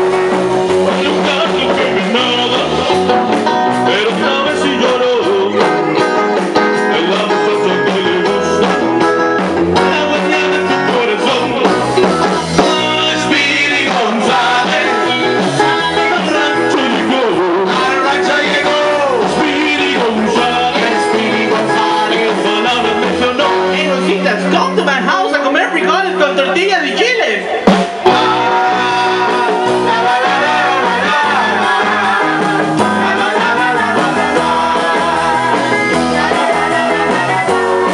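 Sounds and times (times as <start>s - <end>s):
person singing: 0.0s - 25.0s, 28.0s - 37.9s
drum kit beat: 0.0s - 25.1s, 25.7s - 37.9s
guitar: 0.0s - 37.9s
rock and roll band playing: 0.0s - 37.9s.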